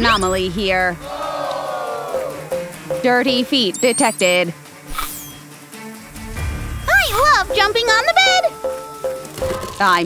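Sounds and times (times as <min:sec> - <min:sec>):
held music chord: 0:02.2 - 0:03.5, 0:07.3 - 0:09.5.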